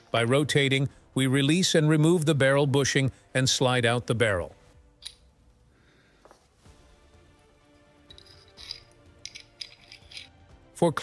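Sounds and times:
quiet background music: 0:00.0 - 0:11.0
metallic clicks of pistol parts: 0:08.1 - 0:10.4.

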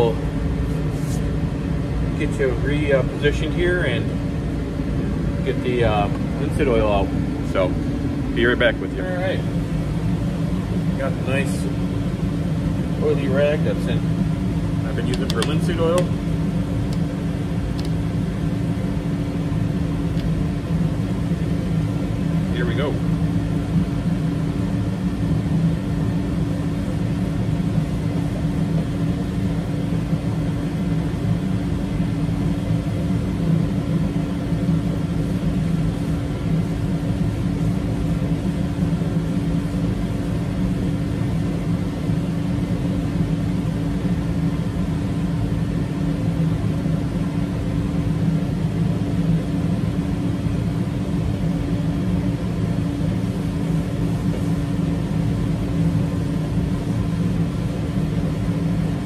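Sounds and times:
steady mechanical hum: 0:00.0 - 0:59.0.

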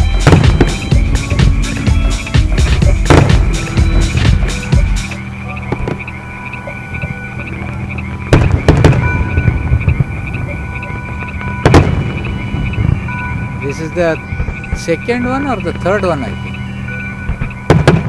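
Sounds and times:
fireworks crackling: 0:00.0 - 0:18.0
low hum: 0:00.0 - 0:18.0
steady high tone: 0:00.0 - 0:18.0
fireworks booms: 0:00.2 - 0:01.6, 0:02.6 - 0:04.9, 0:08.1 - 0:10.5, 0:11.1 - 0:15.0, 0:17.2 - 0:18.0.

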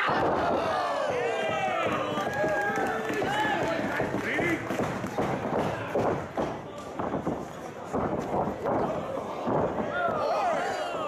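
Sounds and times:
crowd shouting: 0:00.0 - 0:03.8, 0:09.9 - 0:11.0.

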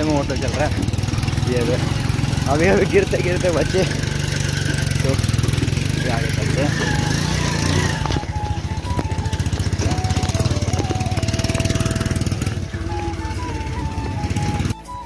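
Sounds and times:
auto-rickshaw engine chugging: 0:00.0 - 0:15.0
background music: 0:00.0 - 0:15.0.

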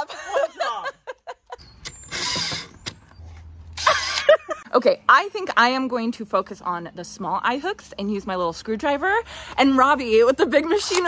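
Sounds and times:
cordless drill driving screw: 0:01.6 - 0:04.3.

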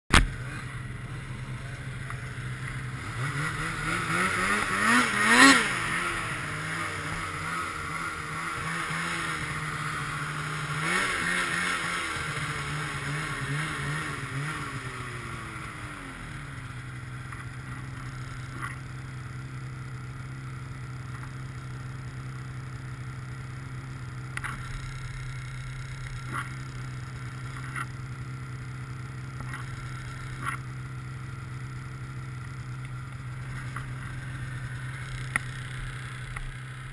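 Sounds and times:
snowmobile engine revving and idling: 0:00.1 - 0:36.9.

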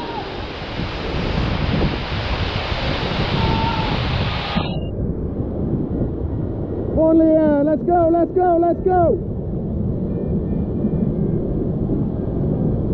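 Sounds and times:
wind on microphone: 0:00.0 - 0:12.9.

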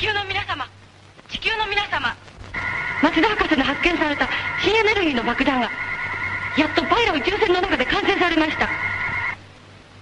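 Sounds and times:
steady high electronic tones: 0:02.6 - 0:09.4.

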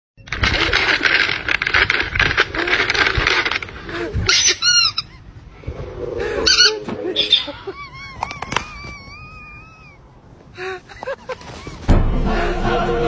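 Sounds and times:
plastic bag crinkling: 0:00.3 - 0:04.1
high-pitched squeaky calls: 0:04.3 - 0:05.8, 0:06.4 - 0:10.2.

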